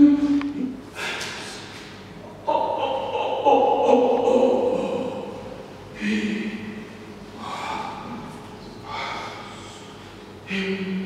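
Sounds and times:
loud breaths: 6.0 - 10.3.

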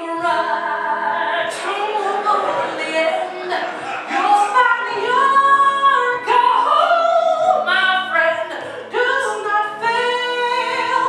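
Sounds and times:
woman singing show tune: 0.0 - 11.0.

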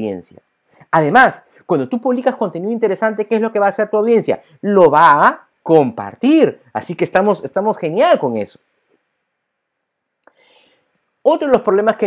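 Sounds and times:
soft intake of breath: 10.3 - 11.0.

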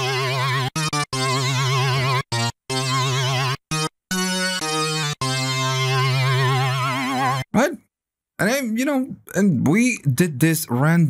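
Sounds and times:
synthesizer lead with fast vibrato: 0.0 - 7.5.

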